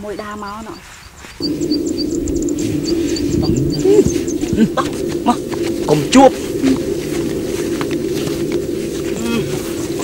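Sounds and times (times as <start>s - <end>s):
high-pitched chirping: 1.4s - 10.0s
steady low hum: 1.4s - 10.0s.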